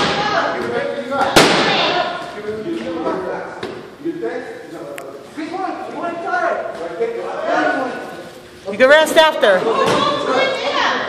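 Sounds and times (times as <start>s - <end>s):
people talking: 8.7s - 11.0s.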